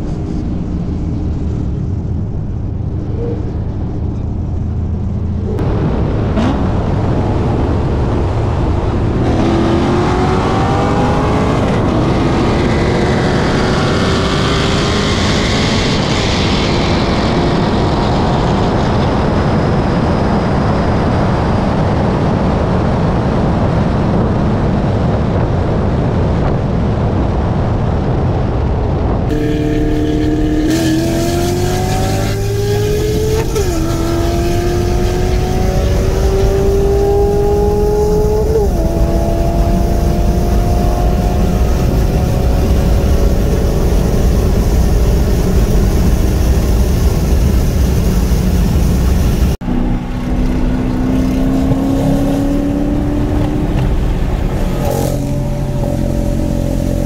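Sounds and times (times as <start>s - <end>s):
cars racing at full throttle: 0.0s - 57.0s
wind rush: 0.0s - 57.0s
engine revving through upshifts: 9.0s - 17.8s, 29.3s - 44.6s, 49.6s - 57.0s.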